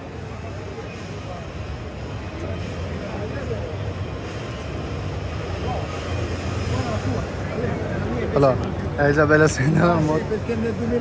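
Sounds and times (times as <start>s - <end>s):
crowd chatter: 0.0s - 11.0s
steady low hum: 0.0s - 11.0s.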